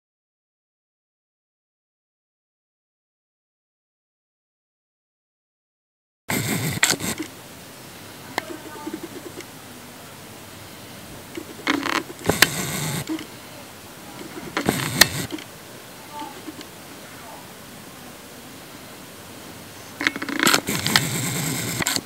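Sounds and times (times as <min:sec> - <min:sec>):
rustling with sharp clicks: 0:06.3 - 0:07.4, 0:08.3 - 0:09.5, 0:11.0 - 0:13.5, 0:14.1 - 0:16.8, 0:19.9 - 0:22.0
steady background hiss: 0:06.3 - 0:22.0.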